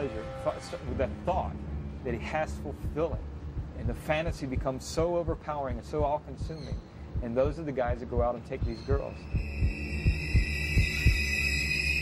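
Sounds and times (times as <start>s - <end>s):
low hum: 0.0s - 12.0s
heartbeat-like low thumps: 2.7s - 11.5s
high-pitched whine: 9.1s - 12.0s.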